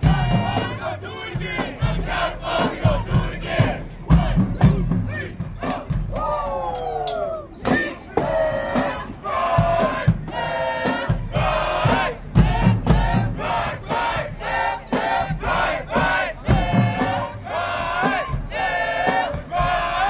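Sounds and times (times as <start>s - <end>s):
drum hits: 0.0s - 6.5s, 7.6s - 20.0s
marching band playing: 0.0s - 6.6s, 7.5s - 20.0s
people shouting and yelling: 2.6s - 12.1s.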